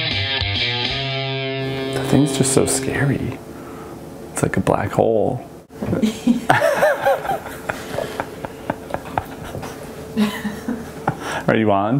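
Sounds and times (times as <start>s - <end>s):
faint steady hum: 1.6s - 11.9s.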